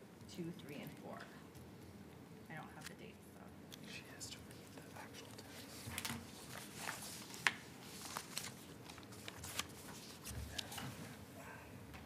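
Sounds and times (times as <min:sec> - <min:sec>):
low room hum: 0:00.0 - 0:12.0
person whispering: 0:03.8 - 0:05.5.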